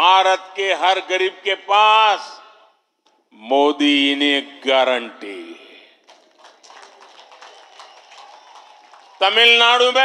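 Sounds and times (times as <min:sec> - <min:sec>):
crowd clapping: 0:06.0 - 0:10.0.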